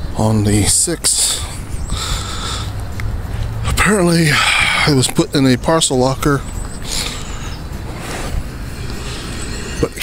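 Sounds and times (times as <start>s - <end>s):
road traffic rushing: 0.0s - 10.0s
vehicle passing: 1.6s - 10.0s.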